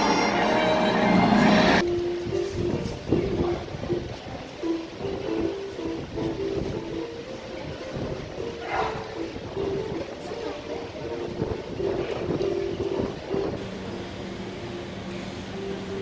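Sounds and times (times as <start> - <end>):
loud rally music: 0.0 - 1.9
train running: 0.0 - 16.0
voices: 3.0 - 16.0.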